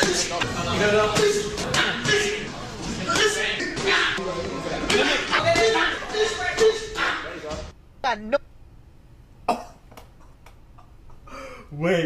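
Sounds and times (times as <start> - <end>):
man coughing: 9.5 - 9.9.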